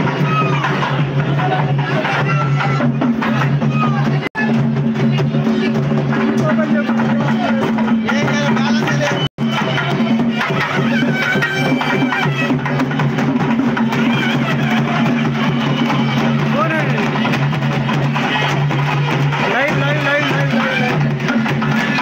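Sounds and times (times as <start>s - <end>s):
crowd voices calling: 0.0s - 22.0s
drumming: 0.0s - 22.0s.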